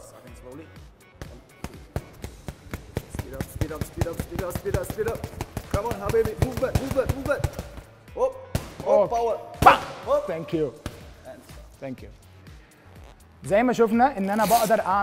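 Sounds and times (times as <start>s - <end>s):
boxing glove punches on gloves: 1.2s - 7.8s.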